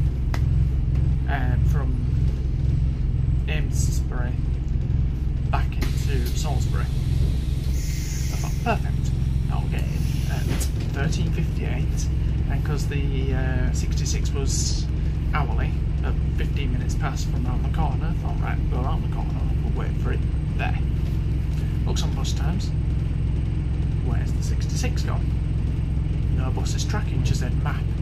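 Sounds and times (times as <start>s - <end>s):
bus engine low rumble: 0.0s - 28.0s.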